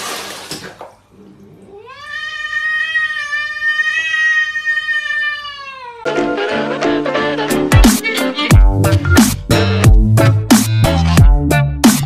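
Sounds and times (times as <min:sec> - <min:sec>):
cat meowing: 0:01.7 - 0:06.1.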